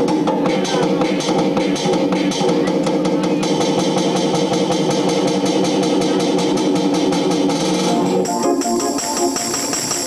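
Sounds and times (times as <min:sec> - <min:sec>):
fast drum-machine beat: 0:00.0 - 0:10.0.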